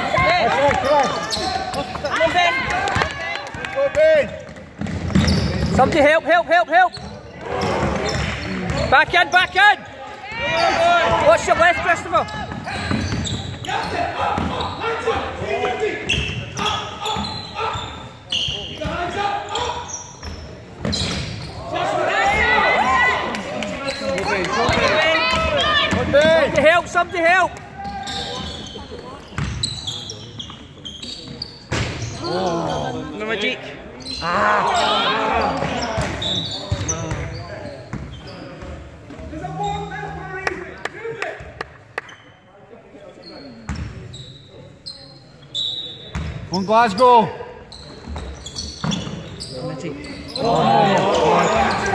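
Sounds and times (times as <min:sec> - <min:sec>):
basketball bouncing in a hall: 0:02.9 - 0:06.0, 0:06.9 - 0:09.4, 0:10.4 - 0:15.4, 0:16.0 - 0:21.6, 0:24.6 - 0:26.6, 0:27.6 - 0:32.2, 0:35.4 - 0:39.4, 0:43.6 - 0:44.1, 0:46.0 - 0:46.5.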